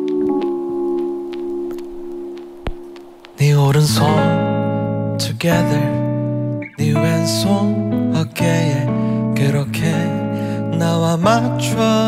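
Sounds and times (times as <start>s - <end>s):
faint ticks: 0.0s - 3.9s
held keyboard chord: 0.0s - 12.0s.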